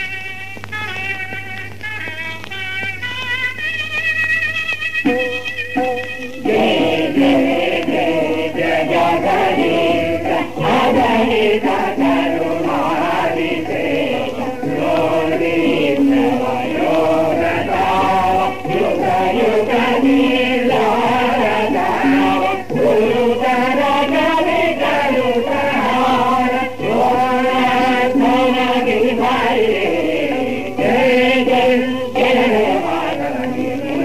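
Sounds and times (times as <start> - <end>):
voices chanting together: 5.1 - 34.0.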